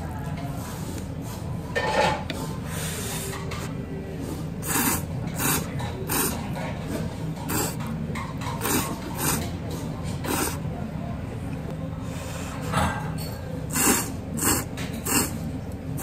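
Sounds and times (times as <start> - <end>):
noodles being slurped: 4.6 - 6.4, 7.4 - 7.9, 8.5 - 9.5, 10.2 - 10.6, 13.7 - 15.4.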